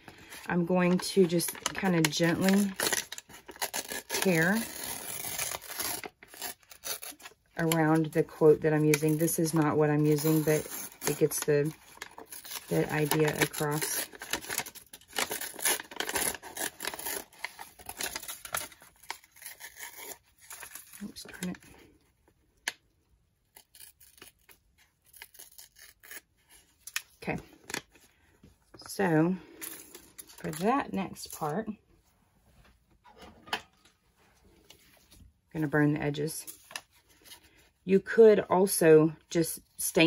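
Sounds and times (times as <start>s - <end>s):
paper page tearing: 0.2s - 8.1s, 8.8s - 21.8s, 23.4s - 27.9s.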